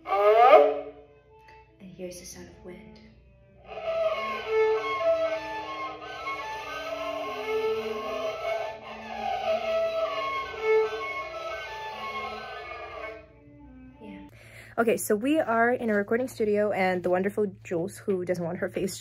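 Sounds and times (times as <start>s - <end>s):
bowed fiddle: 0.0s - 14.3s.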